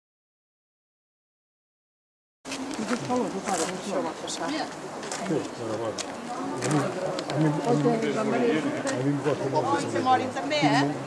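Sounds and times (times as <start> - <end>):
people talking indistinctly: 2.6 - 11.0.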